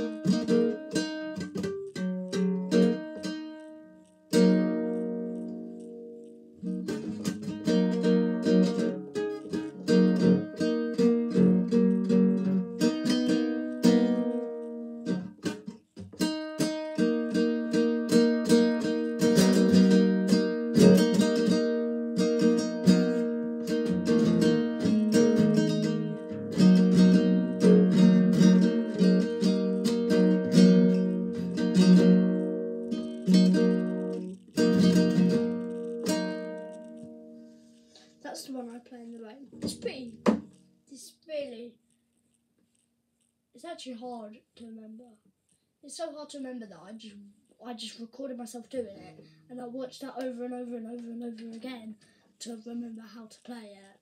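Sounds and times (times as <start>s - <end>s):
acoustic guitar strumming: 0.0s - 40.7s.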